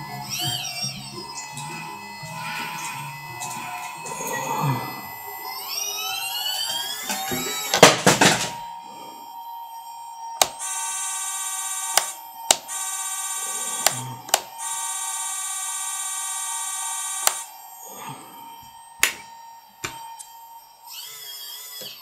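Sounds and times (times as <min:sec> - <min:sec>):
electric motor buzzing: 0:00.0 - 0:08.6, 0:09.2 - 0:22.0
sharp clicks: 0:10.4 - 0:10.7, 0:11.8 - 0:12.8, 0:13.6 - 0:14.6, 0:17.2 - 0:17.5.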